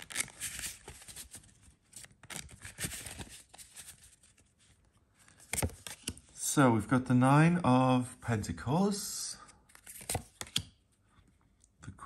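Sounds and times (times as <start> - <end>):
cards being shuffled: 0.0 - 4.4, 5.3 - 6.3, 9.6 - 10.8.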